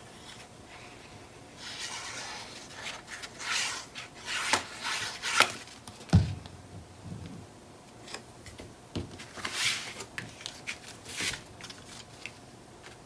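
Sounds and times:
paper rustling and rubbing: 0.2 - 5.8, 9.2 - 13.0.

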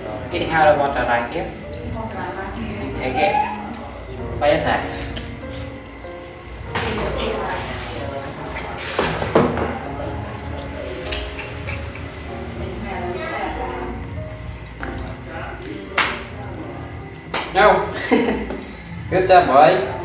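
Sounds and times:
background music held notes: 0.0 - 20.0.

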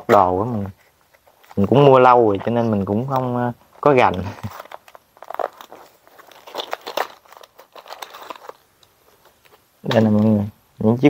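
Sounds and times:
plastic parcel crinkling: 0.0 - 10.5.

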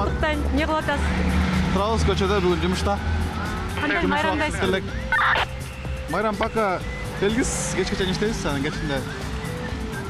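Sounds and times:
background music: 0.0 - 10.0
road traffic rumble: 0.0 - 10.0.

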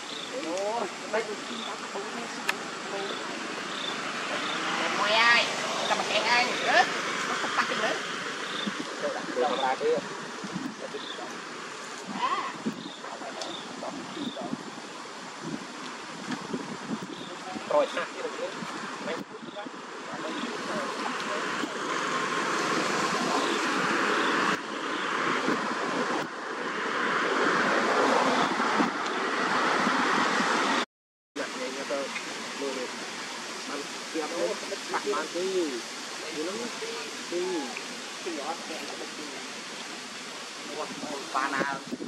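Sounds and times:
steady rushing noise: 0.0 - 30.8.

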